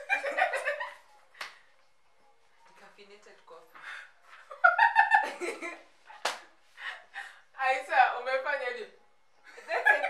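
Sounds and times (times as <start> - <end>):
women laughing: 0.0 - 1.1, 4.4 - 5.9, 9.6 - 10.0
hand slap: 1.4 - 1.6, 6.2 - 6.5.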